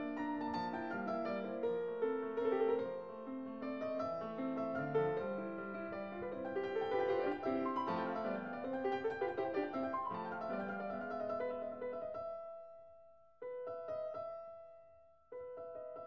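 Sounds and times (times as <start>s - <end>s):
piano music: 0.0s - 14.8s.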